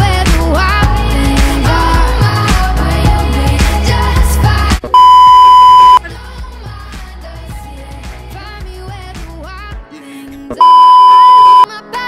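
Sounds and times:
pop music with steady beat: 0:00.0 - 0:12.0
test tone beep: 0:05.0 - 0:06.0, 0:10.6 - 0:11.7.

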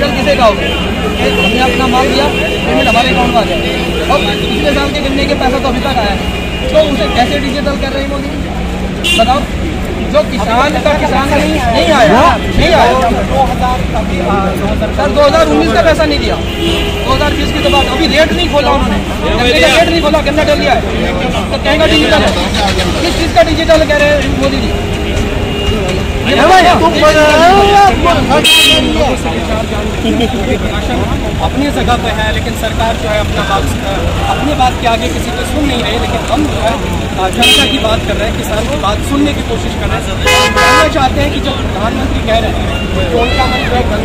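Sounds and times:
man talking into microphone: 0:00.0 - 0:25.0, 0:25.7 - 0:44.0
traffic rumble: 0:00.0 - 0:44.0
vehicle horn toot: 0:09.0 - 0:09.4, 0:16.3 - 0:18.0, 0:27.6 - 0:29.2, 0:37.4 - 0:38.0, 0:40.2 - 0:41.0.

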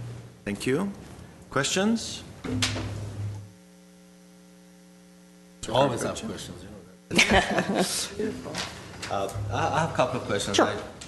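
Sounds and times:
electrical mains hum: 0:00.0 - 0:11.0
lower hum tone: 0:02.4 - 0:05.6, 0:09.2 - 0:10.5.

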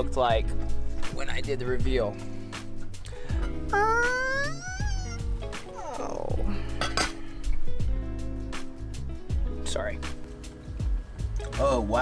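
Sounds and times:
background music: 0:00.0 - 0:12.0
rising vocal sound: 0:03.7 - 0:05.2
metal pan lid clinking: 0:06.8 - 0:07.2.

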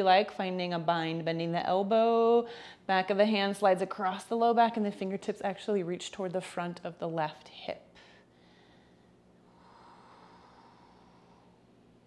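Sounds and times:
faint room hum: 0:00.0 - 0:12.0
soft breath: 0:07.9 - 0:11.9.

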